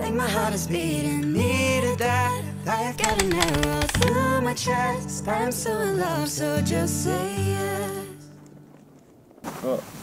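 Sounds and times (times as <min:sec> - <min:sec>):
background song: 0:00.0 - 0:08.4
person speaking: 0:03.0 - 0:04.2.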